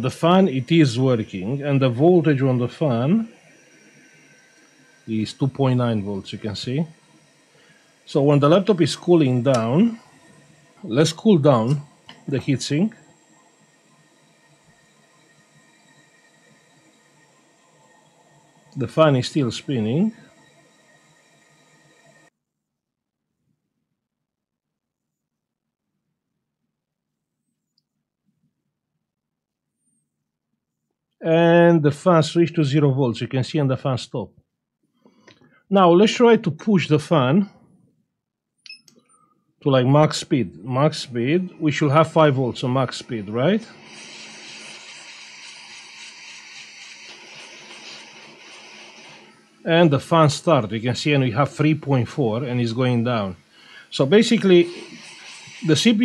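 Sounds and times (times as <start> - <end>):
hot-air station airy hiss: 0.0 - 22.3, 35.0 - 37.6, 39.5 - 56.0
laptop cooling fan: 0.0 - 22.4, 39.8 - 56.0.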